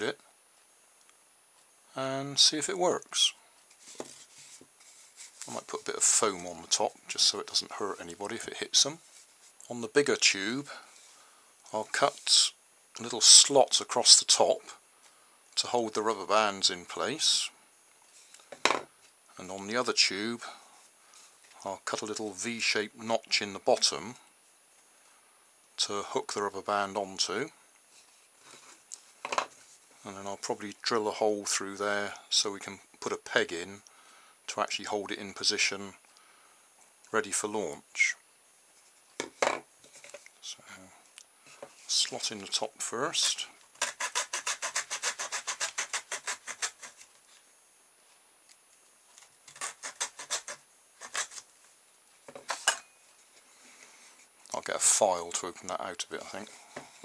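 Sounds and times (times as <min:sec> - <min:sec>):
hacksaw rasping strokes: 0:43.8 - 0:47.0, 0:49.5 - 0:51.4.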